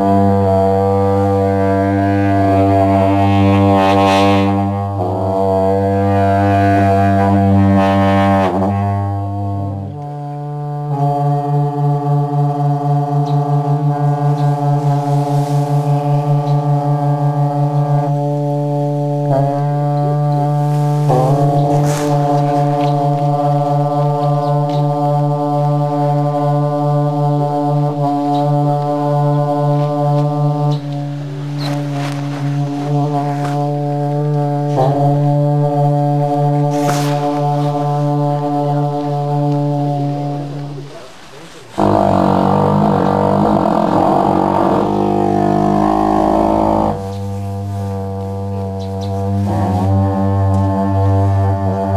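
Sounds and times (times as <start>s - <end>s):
long ritual horns droning: 0.0s - 51.9s.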